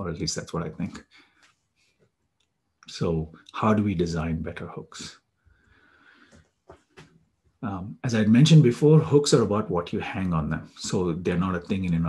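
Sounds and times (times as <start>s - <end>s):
faint breathing: 1.0s - 2.0s, 5.4s - 6.6s.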